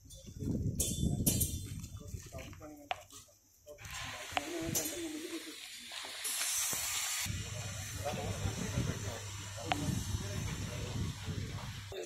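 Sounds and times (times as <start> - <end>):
brief burst of hiss: 3.8 - 7.3
indistinct chatter of people: 7.3 - 12.0
steady low hum: 7.3 - 12.0.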